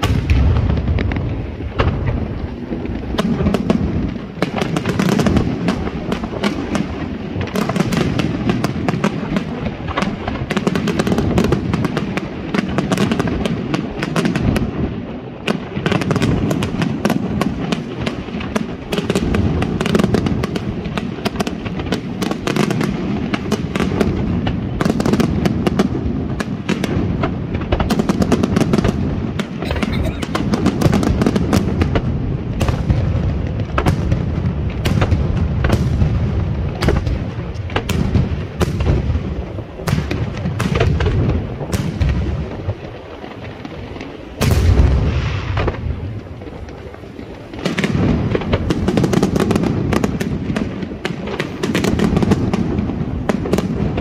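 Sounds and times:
fireworks bursting and crackling: 0:00.0 - 0:54.0.

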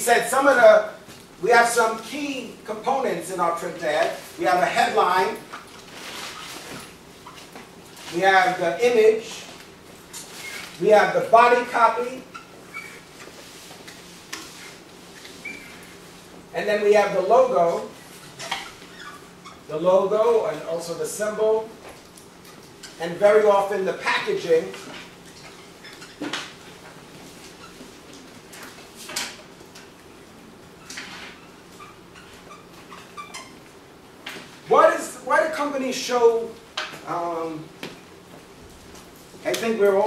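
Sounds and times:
marker squeaking on whiteboard: 0:10.1 - 0:10.8, 0:12.0 - 0:16.1, 0:17.7 - 0:19.7, 0:22.4 - 0:23.2, 0:24.5 - 0:26.8, 0:27.4 - 0:28.2, 0:30.8 - 0:33.7.

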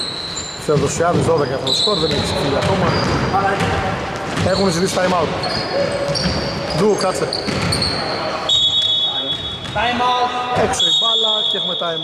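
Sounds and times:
referee's whistle blast: 0:08.5 - 0:10.0, 0:10.7 - 0:12.0.

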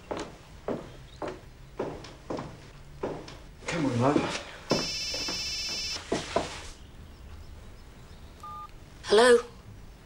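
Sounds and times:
electronic telephone ringing: 0:04.8 - 0:06.0.

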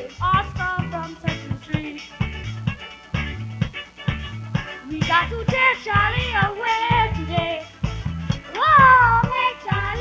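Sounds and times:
live backing band: 0:00.0 - 0:10.0.

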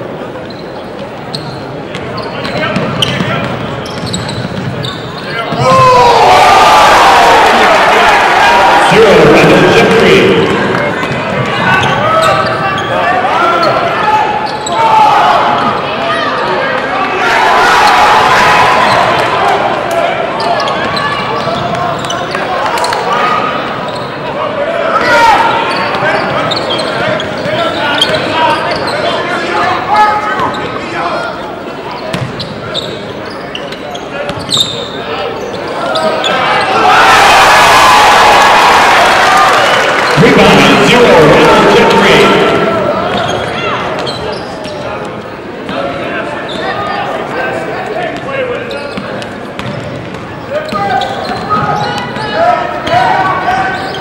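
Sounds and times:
voices echoing in a hall: 0:00.0 - 0:54.0.

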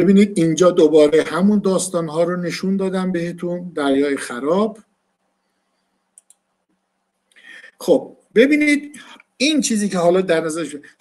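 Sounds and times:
faint quick clicks: 0:06.2 - 0:06.4.

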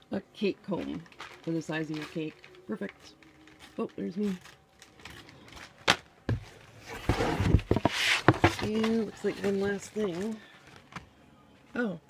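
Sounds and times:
cardboard box rustling: 0:06.3 - 0:10.4.

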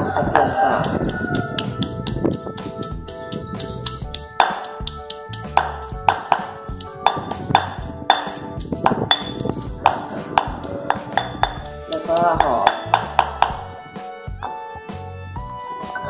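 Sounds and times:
background music with held notes: 0:00.0 - 0:16.0
pestle pounding in stone mortar: 0:00.2 - 0:13.7.

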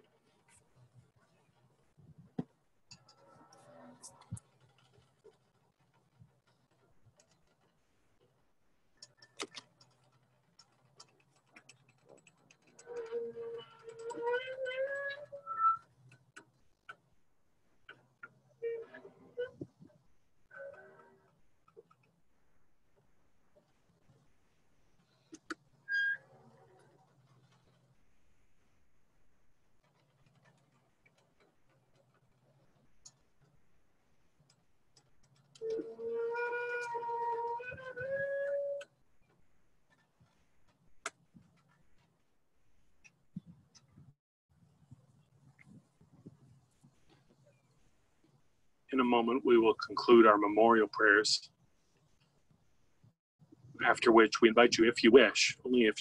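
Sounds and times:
faint clicks and ticks: 0:00.0 - 0:35.8, 0:36.6 - 0:56.0.

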